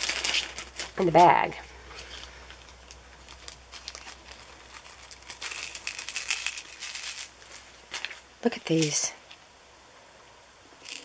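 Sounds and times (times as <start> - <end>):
plastic bag crinkling: 0.0 - 9.4, 10.8 - 11.0.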